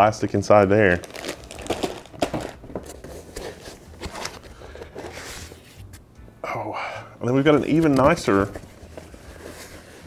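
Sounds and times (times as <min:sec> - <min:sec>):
plastic wrapping crinkling: 0:00.8 - 0:05.4.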